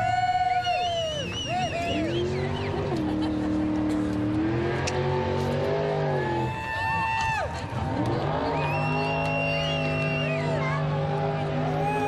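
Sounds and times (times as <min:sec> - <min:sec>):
racing engine at high revs: 0:01.2 - 0:12.0.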